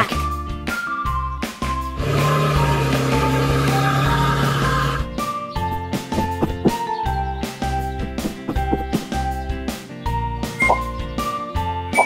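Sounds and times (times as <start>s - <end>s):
upbeat children's music: 0.0s - 12.0s
truck engine rumble: 2.0s - 9.4s.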